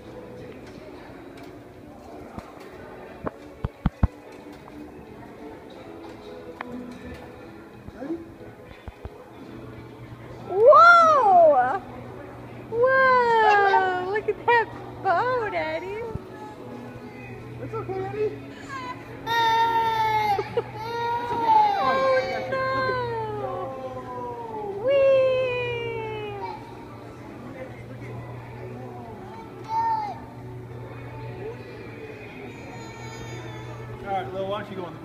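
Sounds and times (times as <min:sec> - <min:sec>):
toddler crying: 0:18.6 - 0:23.7, 0:32.4 - 0:33.9.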